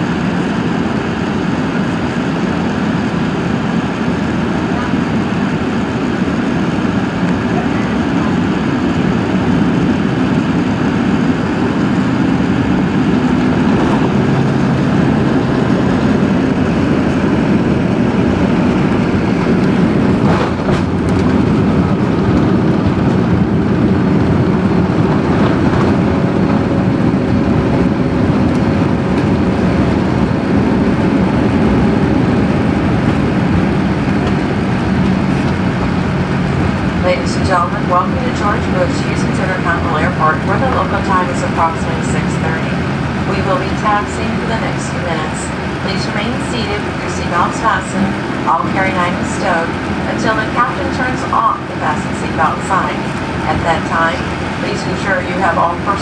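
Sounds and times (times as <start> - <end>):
airplane cabin rumble: 0.0 - 56.0.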